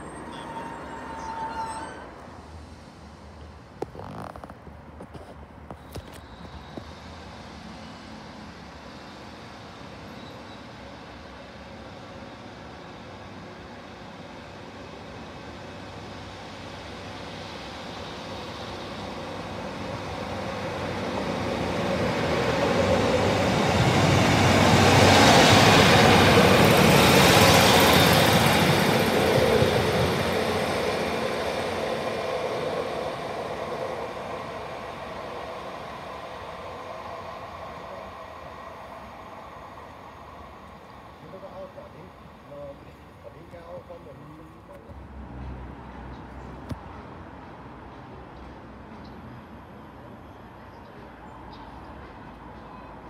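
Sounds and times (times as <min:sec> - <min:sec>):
diesel train engine: 0:00.0 - 0:03.9, 0:04.6 - 0:53.0
train wheels on rails: 0:00.0 - 0:53.0.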